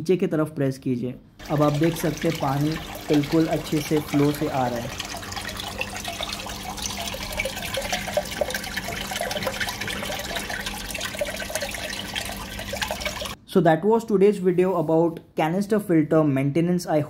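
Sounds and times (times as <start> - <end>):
water gushing and splashing: 1.4 - 13.4.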